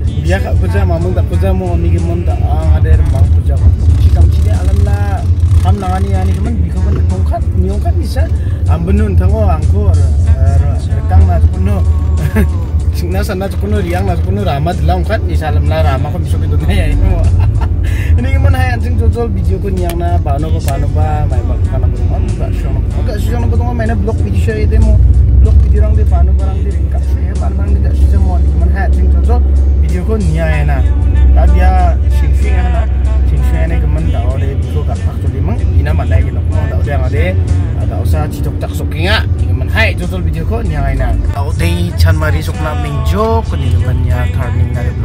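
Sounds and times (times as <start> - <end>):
background music: 0.0 - 45.0
car engine and tyres rumble: 0.0 - 45.0
man talking: 0.0 - 45.0.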